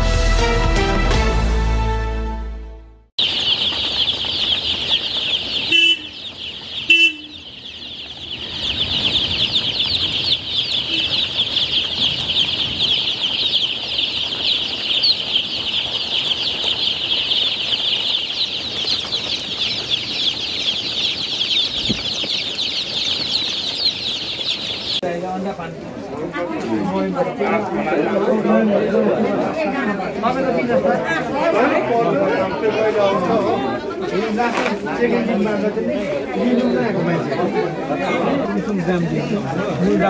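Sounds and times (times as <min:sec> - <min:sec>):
chicks peeping: 0:03.2 - 0:40.0.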